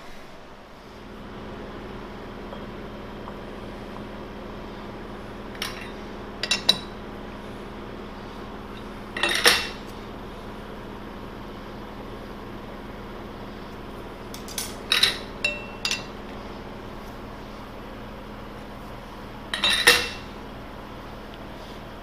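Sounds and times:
low shop hum: 0:00.0 - 0:22.0
steel clanks and clinks: 0:05.6 - 0:06.9, 0:14.4 - 0:16.1, 0:19.5 - 0:20.2.

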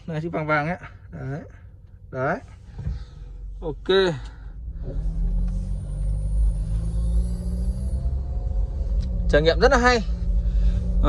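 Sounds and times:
car engine: 0:00.0 - 0:11.0
road rumble: 0:00.0 - 0:11.0.

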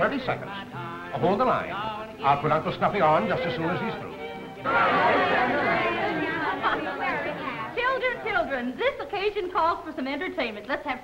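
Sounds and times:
group chatter: 0:04.1 - 0:08.8.

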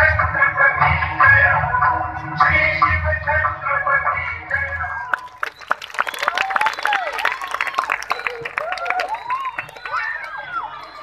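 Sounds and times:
crowd voices: 0:00.0 - 0:11.0
people clapping: 0:04.5 - 0:11.0.

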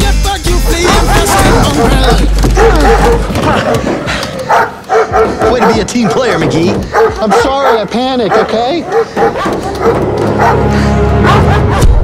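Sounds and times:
man's voice: 0:00.0 - 0:03.8, 0:05.3 - 0:09.1
dogs barking: 0:00.5 - 0:12.0.

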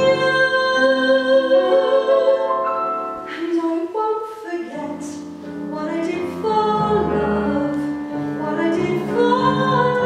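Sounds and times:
woman singing a slow ballad: 0:00.0 - 0:02.4, 0:03.3 - 0:10.0
digital piano accompaniment: 0:00.0 - 0:10.0.

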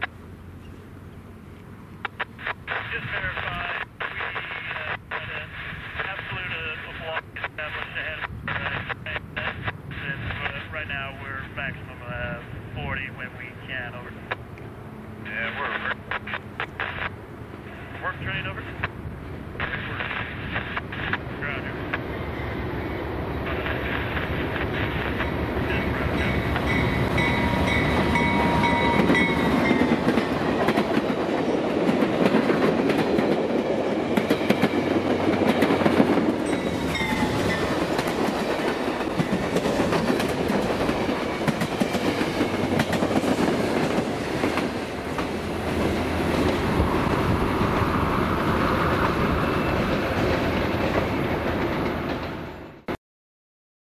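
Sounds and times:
diesel locomotive passing: 0:00.0 - 0:52.9.

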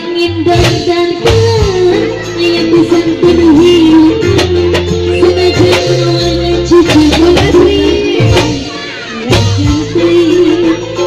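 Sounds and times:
bass line: 0:00.0 - 0:11.0
sharp drum hits: 0:00.5 - 0:02.0, 0:03.8 - 0:09.9.

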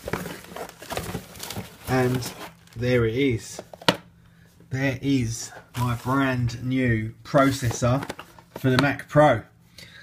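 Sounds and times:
plastic packing material crinkling: 0:00.0 - 0:02.8, 0:05.5 - 0:06.3, 0:07.3 - 0:08.8.

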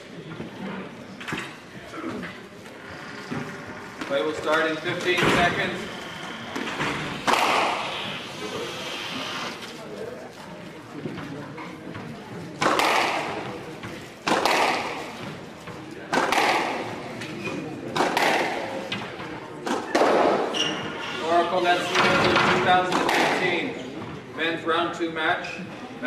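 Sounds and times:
squash ball hit by racket: 0:06.6 - 0:07.9, 0:12.6 - 0:15.4, 0:16.1 - 0:17.0, 0:17.9 - 0:20.5, 0:22.9 - 0:23.5.

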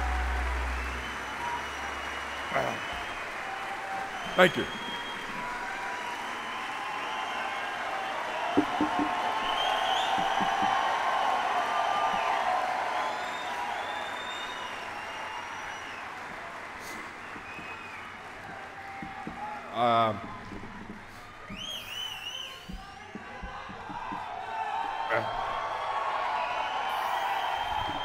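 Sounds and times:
audience applauding and cheering: 0:00.0 - 0:28.0
soft thumps: 0:08.6 - 0:10.9, 0:22.6 - 0:25.6.

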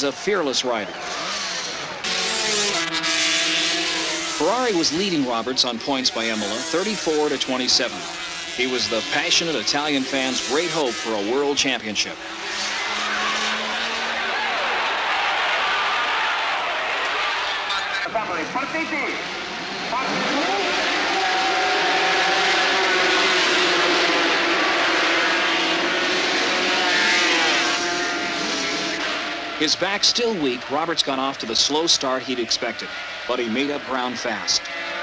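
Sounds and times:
racing motorcycles passing at speed: 0:00.0 - 0:17.7, 0:18.4 - 0:35.0
motorcycles revving together: 0:00.9 - 0:14.6, 0:19.4 - 0:29.8.

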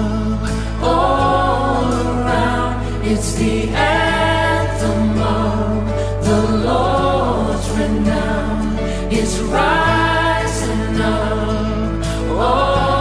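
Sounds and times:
group singing gospel song: 0:00.0 - 0:13.0
instrumental accompaniment with bass: 0:00.0 - 0:13.0.

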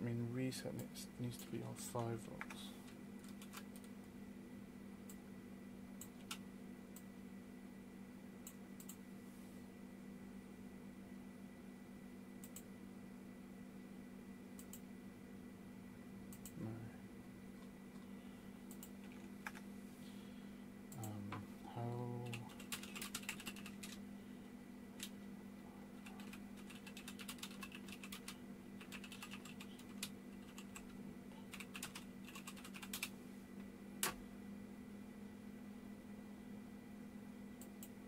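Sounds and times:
typing on computer keyboard: 0:03.2 - 0:03.9, 0:22.2 - 0:24.0, 0:26.0 - 0:30.9, 0:31.5 - 0:33.1.

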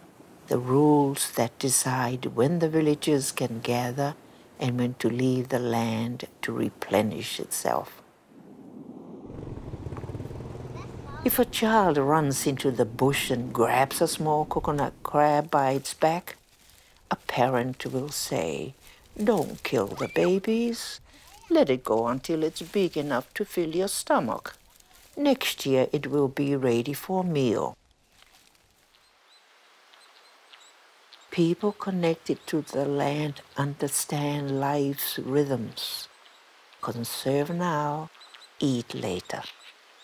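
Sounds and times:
faint outdoor ambience: 0:00.0 - 0:40.0
small engine running: 0:09.3 - 0:11.4.

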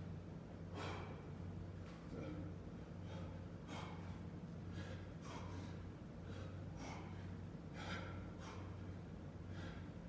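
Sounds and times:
steady low hum: 0:00.0 - 0:10.0
man breathing hard: 0:00.7 - 0:01.5, 0:02.1 - 0:10.0.

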